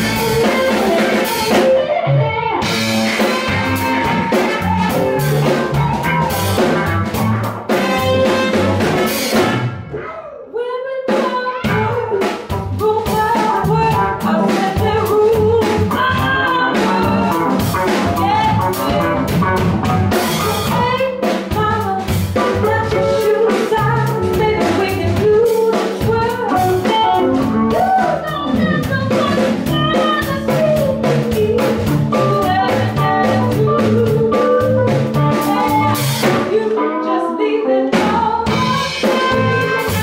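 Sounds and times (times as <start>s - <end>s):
drum kit steady beat: 0.0s - 1.8s, 2.6s - 9.9s, 11.1s - 36.7s, 37.9s - 40.0s
woman singing: 0.0s - 6.1s, 10.5s - 19.4s, 20.4s - 40.0s
electric guitar: 0.0s - 10.2s, 11.5s - 40.0s
bass: 0.0s - 40.0s.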